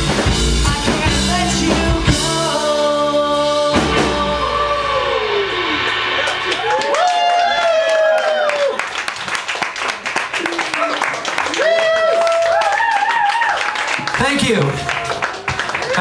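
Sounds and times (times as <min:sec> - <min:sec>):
rock band playing: 0:00.0 - 0:09.2
crashing chord hits: 0:03.4 - 0:07.7
people clapping: 0:06.2 - 0:16.0.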